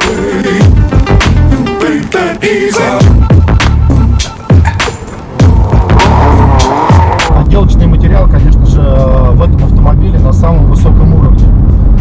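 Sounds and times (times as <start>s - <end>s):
music with a beat: 0.0s - 7.3s
car engine and road noise: 0.0s - 12.0s.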